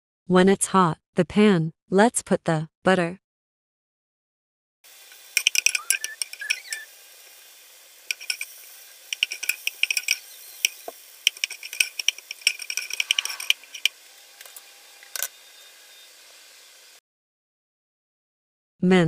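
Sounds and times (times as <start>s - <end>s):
crackles and pops: 4.9s - 15.4s
butter sizzling in a pot: 4.9s - 17.0s.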